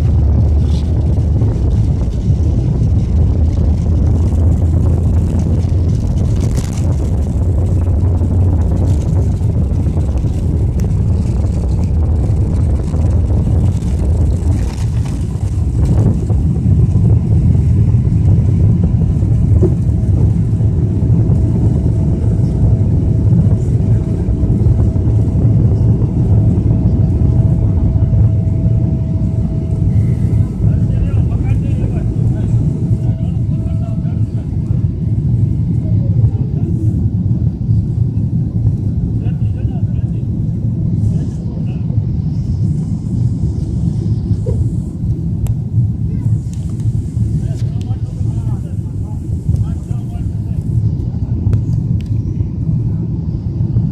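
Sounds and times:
faint steady whine: 0.0s - 53.9s
jet engines low rumble: 0.0s - 53.9s.

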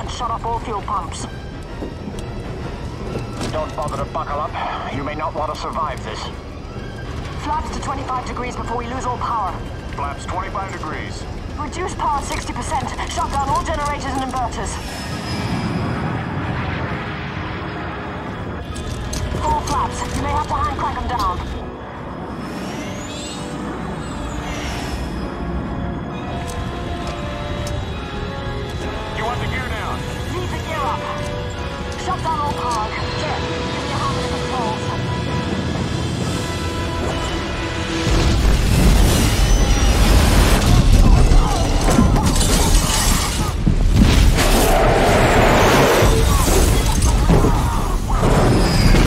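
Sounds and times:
tense dark film score: 0.0s - 49.0s.

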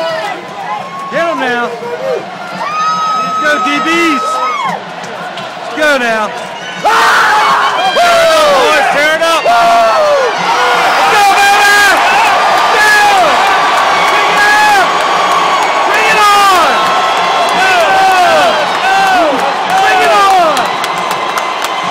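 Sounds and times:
players whooping and yelling: 0.0s - 4.8s, 6.6s - 21.9s
crowd noise: 0.0s - 21.9s.

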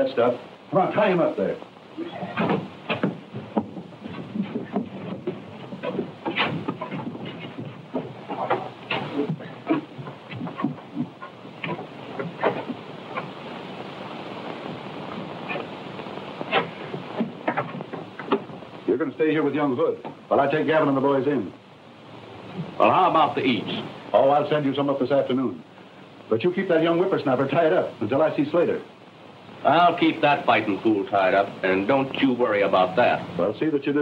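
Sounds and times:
film soundtrack hiss: 0.0s - 34.0s
shuffles and rustles: 2.0s - 13.4s
knocks on wooden chair: 2.3s - 12.6s.

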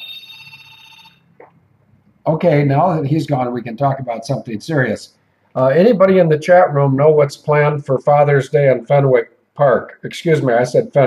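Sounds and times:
electronic ringtone: 0.0s - 1.3s.

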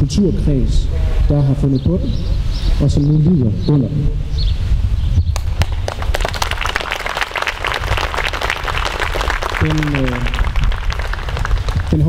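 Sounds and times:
crowd applause: 5.8s - 12.0s.

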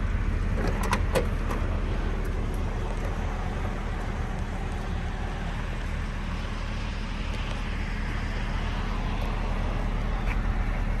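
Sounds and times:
motor vehicle rumble: 0.0s - 11.0s.

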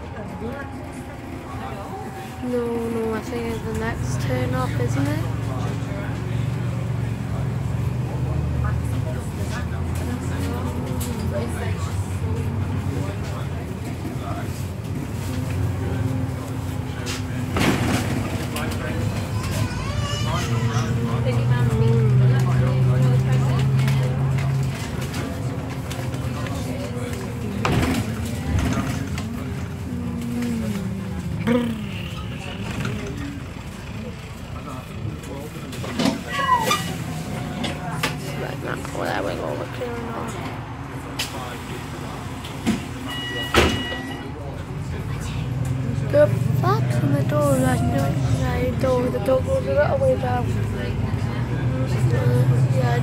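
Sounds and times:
bus engine and driveline whine: 0.0s - 53.0s.

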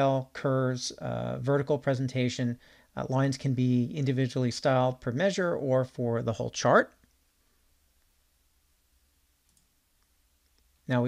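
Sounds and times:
man's voice: 0.0s - 7.0s
computer mouse clicks: 9.4s - 10.7s.

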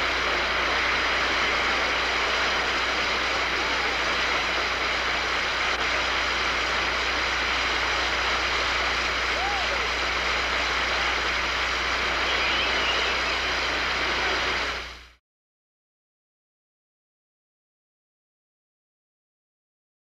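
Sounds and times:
audience applauding: 9.2s - 14.7s
faint voice or whistle: 9.4s - 9.9s, 12.2s - 13.6s.

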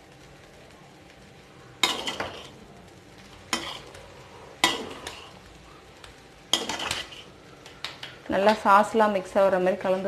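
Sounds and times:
metal spoon clanking on wok: 1.8s - 2.5s, 4.6s - 5.3s, 6.5s - 8.7s
spoon scraping metal wok: 1.8s - 2.6s, 3.4s - 5.4s, 6.5s - 8.6s.

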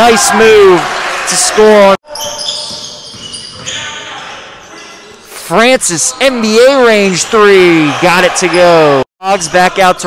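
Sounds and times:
sneaker squeaks: 2.1s - 5.3s.

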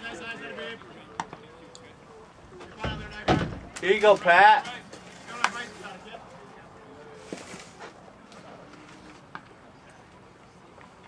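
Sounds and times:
distant people chatting: 0.0s - 11.0s.

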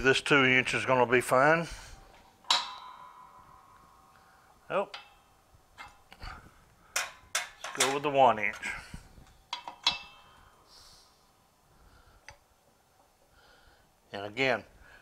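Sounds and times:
metal parts clanking: 2.4s - 3.5s, 6.9s - 10.4s.

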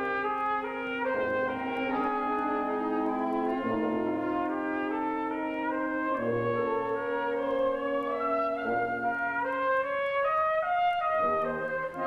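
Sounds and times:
military wind band playing: 0.0s - 12.0s.

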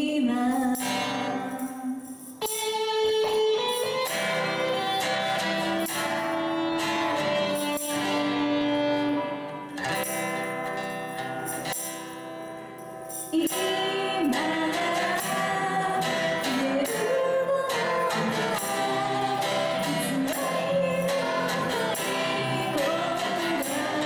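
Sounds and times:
woman singing a slow ballad: 0.0s - 2.0s, 13.3s - 24.0s
acoustic guitar: 0.0s - 24.0s
electric guitar: 0.0s - 24.0s.

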